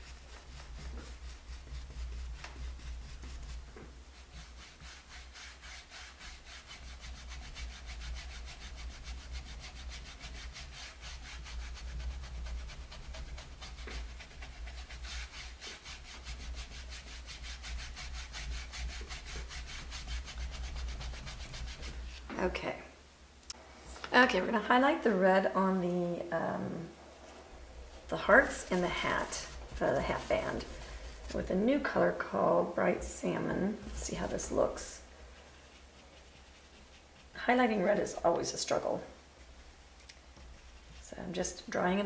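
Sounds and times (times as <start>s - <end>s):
paintbrush scratching on wooden board: 0.0s - 22.2s, 27.8s - 32.0s, 33.4s - 41.6s.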